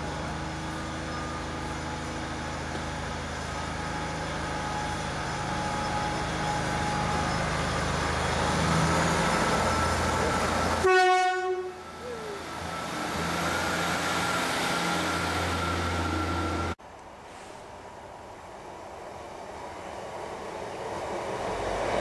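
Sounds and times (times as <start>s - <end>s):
diesel railcar passing: 0.0s - 22.0s
train horn blast: 10.8s - 11.9s.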